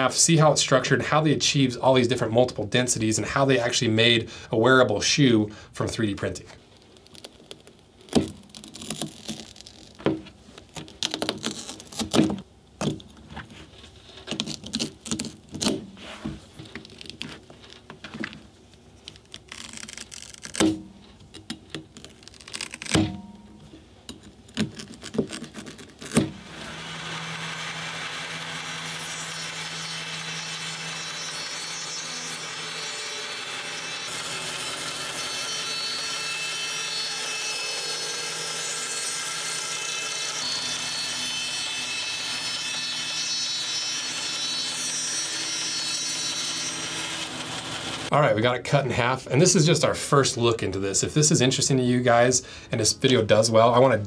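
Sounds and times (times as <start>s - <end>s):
bandsaw cutting: 7.0s - 12.4s, 14.2s - 16.2s, 19.1s - 20.9s, 21.8s - 23.3s, 24.1s - 48.1s.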